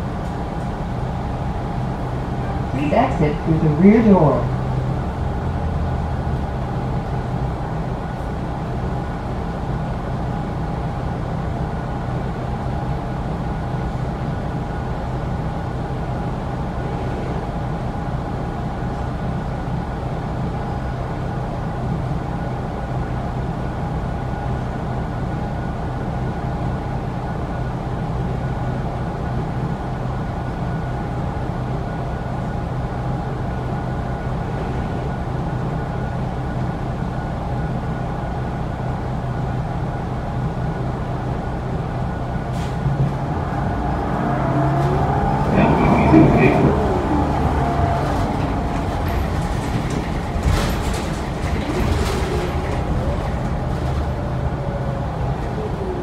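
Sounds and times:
bus engine and ventilation hum: 0:00.0 - 0:56.0.

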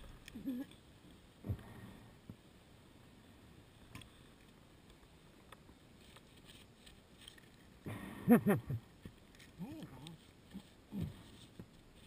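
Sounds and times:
faint background noise: 0:00.0 - 0:12.0
person laughing: 0:07.9 - 0:08.8.

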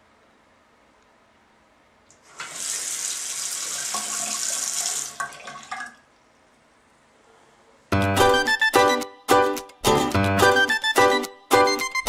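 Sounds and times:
tap water running into basin: 0:02.1 - 0:06.1.

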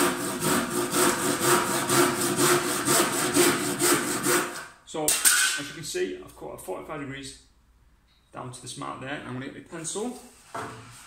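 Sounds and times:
hand saw cutting wood: 0:00.0 - 0:04.7.

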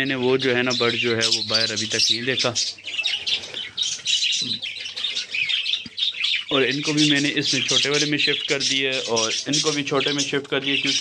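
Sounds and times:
budgerigars chirping: 0:00.0 - 0:11.0.

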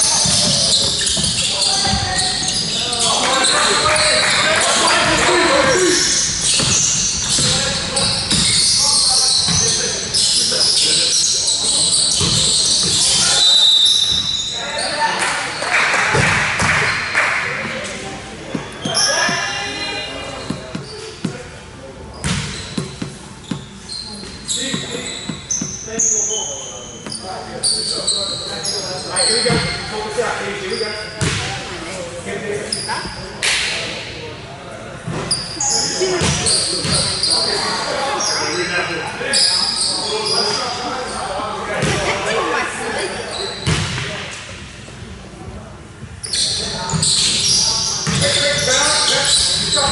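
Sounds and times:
sneakers squeaking on floor: 0:00.0 - 0:32.0, 0:32.6 - 0:33.4, 0:35.0 - 0:44.2, 0:46.1 - 0:49.9
players and spectators talking: 0:00.0 - 0:49.9
voices in a hall: 0:00.0 - 0:49.9
basketball bouncing on wooden court: 0:06.5 - 0:08.6, 0:12.1 - 0:13.2, 0:31.2 - 0:31.4, 0:36.2 - 0:37.1, 0:48.0 - 0:48.3
basketball bouncing on wooden floor: 0:12.2 - 0:13.0, 0:48.0 - 0:48.2.

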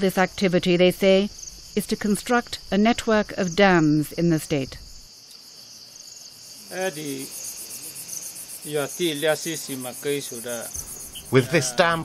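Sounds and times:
insects chorus pulsing: 0:00.0 - 0:12.0
man talking: 0:06.7 - 0:07.3, 0:08.7 - 0:12.0.

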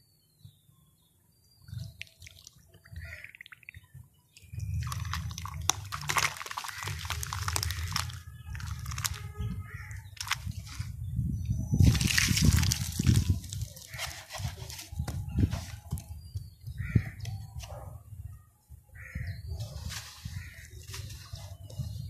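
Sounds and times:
dry sand crumbling into water: 0:04.4 - 0:09.4, 0:10.1 - 0:10.6, 0:11.8 - 0:14.6
wet sand crackling: 0:04.4 - 0:10.9, 0:11.7 - 0:14.8.

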